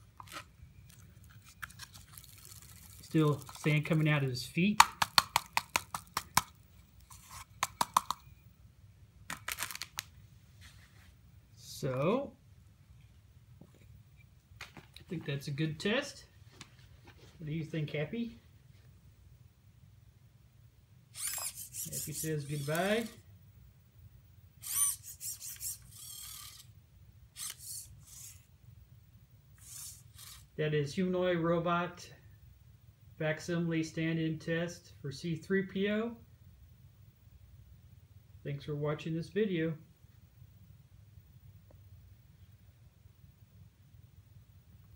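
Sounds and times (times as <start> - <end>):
plastic robot rattling when shaken: 1.6 - 4.2, 21.2 - 23.2, 24.6 - 26.7, 27.4 - 28.5, 29.6 - 30.5
rustling scrape: 7.0 - 7.6, 10.4 - 11.2.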